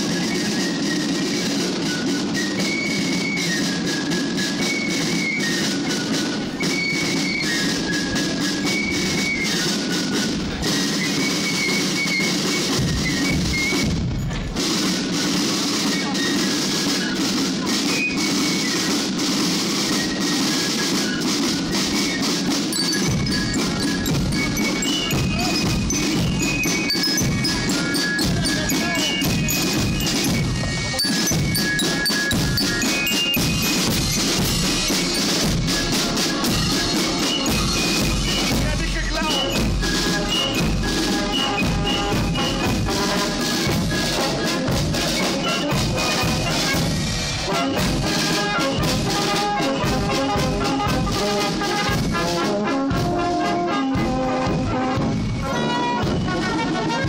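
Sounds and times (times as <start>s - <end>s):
glockenspiel notes: 0.0s - 54.2s, 55.0s - 57.0s
marching band playing: 0.0s - 57.0s
snare and bass drums: 0.0s - 57.0s.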